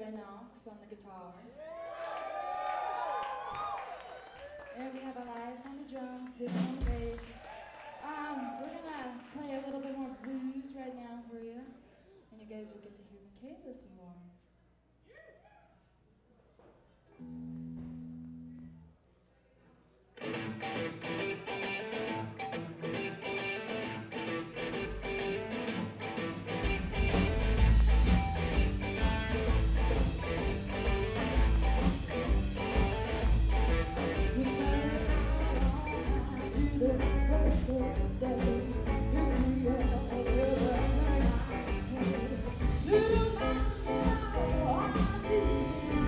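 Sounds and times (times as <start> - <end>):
live blues band playing: 6.4 - 7.4, 20.2 - 46.0.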